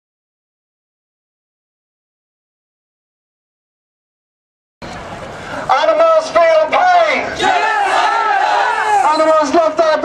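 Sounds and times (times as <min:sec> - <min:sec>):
crowd chanting and shouting: 0:05.5 - 0:10.0.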